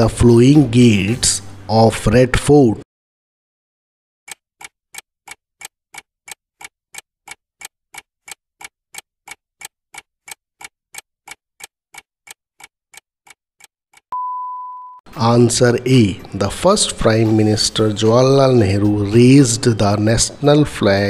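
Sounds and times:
clock ticking: 4.3 - 14.1.

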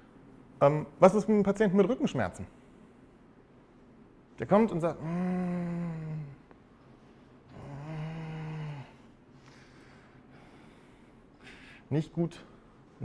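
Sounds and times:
man groaning in pain: 5.0 - 6.4, 7.5 - 8.9.

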